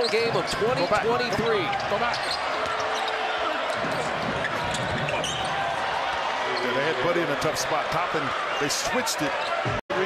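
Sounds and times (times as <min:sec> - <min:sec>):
sneakers squeaking on court: 0:00.0 - 0:05.7
crowd noise: 0:00.0 - 0:10.0.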